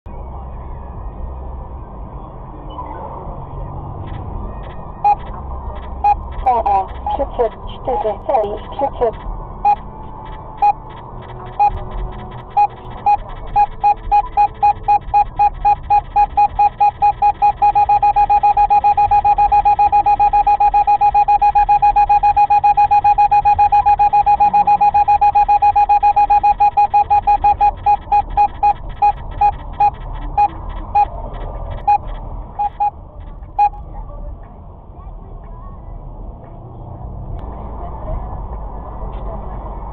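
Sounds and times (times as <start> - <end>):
faint road noise: 0.1 - 39.9
radar detector beeping: 5.0 - 5.3, 5.9 - 9.8, 10.4 - 32.9.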